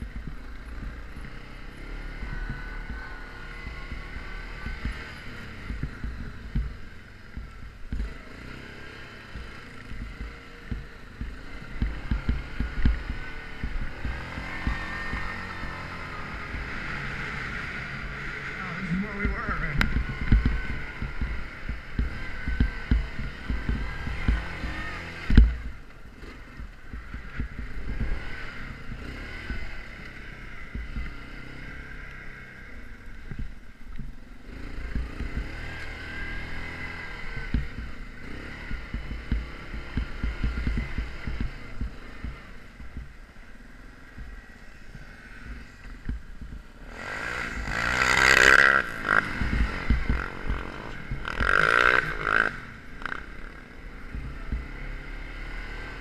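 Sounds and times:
quad bike engine revving: 0:00.0 - 0:56.0.

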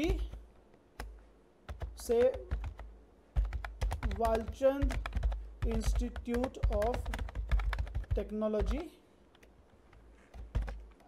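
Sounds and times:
computer keyboard keystrokes: 0:01.7 - 0:09.5, 0:10.3 - 0:11.0.

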